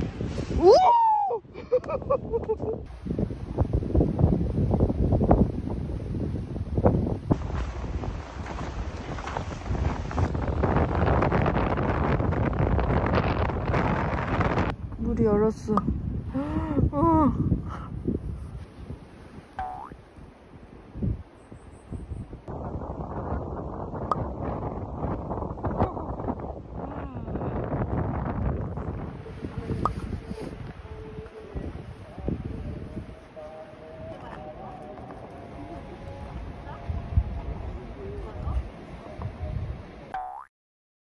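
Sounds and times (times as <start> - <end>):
wind rumbling on microphone: 0.0 - 40.1.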